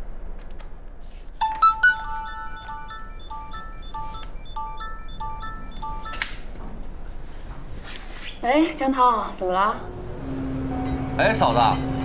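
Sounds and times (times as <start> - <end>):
mobile phone melodic ringtone: 1.4 - 6.3.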